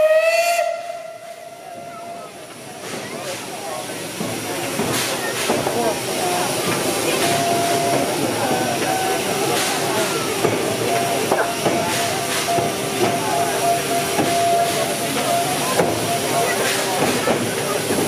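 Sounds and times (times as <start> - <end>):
steam locomotive hissing: 0.0 - 18.0.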